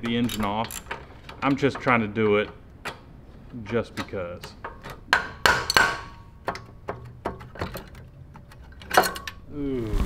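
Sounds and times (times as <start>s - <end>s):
metal knocks on engine head: 4.6s - 7.5s.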